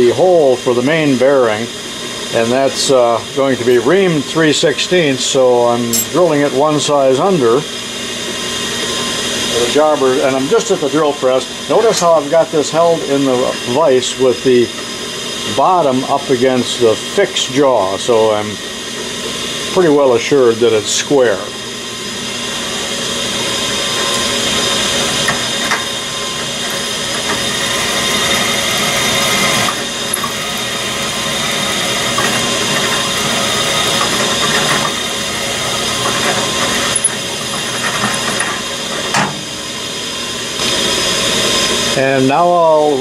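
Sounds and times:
drill press drilling metal: 0.0s - 42.8s.

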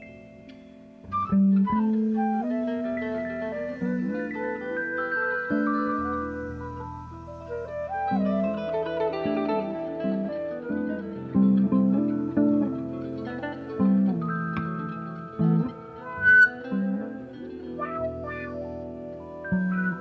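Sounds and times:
guitar notes: 0.0s - 20.0s
live band instrumental: 0.0s - 20.0s.

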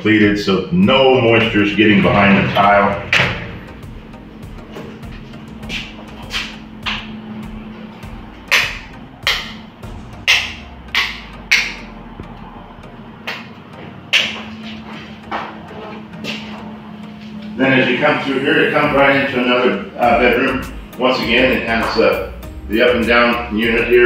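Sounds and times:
steady low hum: 1.3s - 13.3s.

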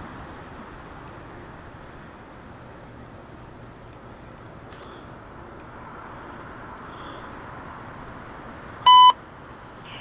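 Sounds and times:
short electronic beep: 8.9s - 9.2s.

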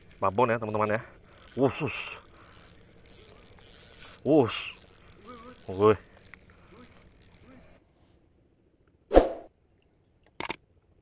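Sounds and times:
fishing reel cranking: 0.0s - 7.8s.

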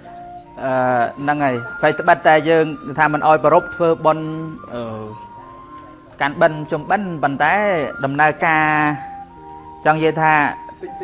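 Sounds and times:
soft electronic background music: 0.0s - 11.0s
man speaking: 0.6s - 5.2s, 6.2s - 9.1s, 9.8s - 11.0s.

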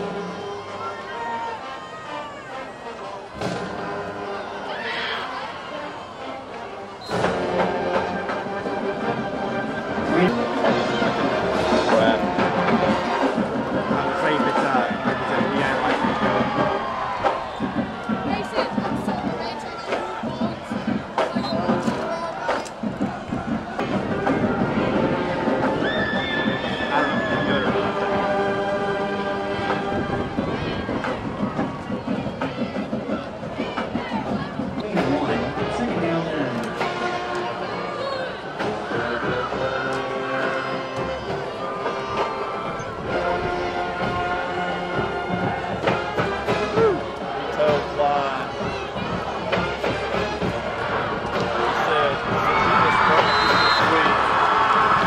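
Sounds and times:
crowd noise: 0.0s - 55.0s
music: 0.0s - 55.0s.

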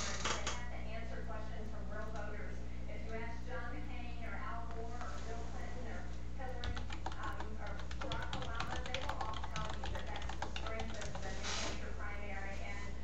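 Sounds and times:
typing on computer keyboard: 6.6s - 11.4s.

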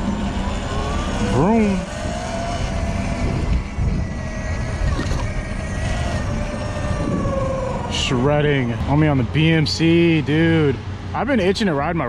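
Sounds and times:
wind rumble on microphone: 0.0s - 9.4s
electric motor whining: 0.0s - 10.2s.

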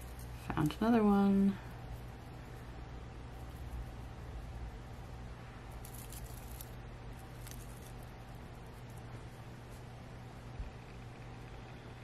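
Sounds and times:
steady low hum: 0.0s - 12.0s
crystals rustling: 5.7s - 9.1s.

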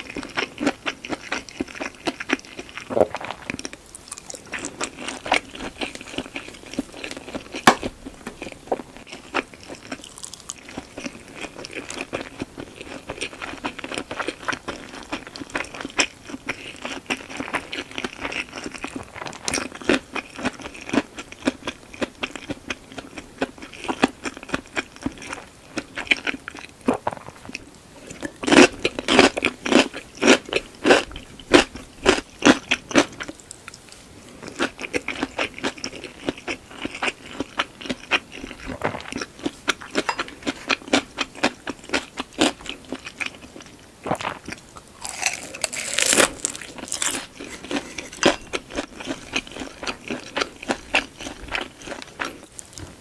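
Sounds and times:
crunchy chewing: 0.0s - 53.0s.

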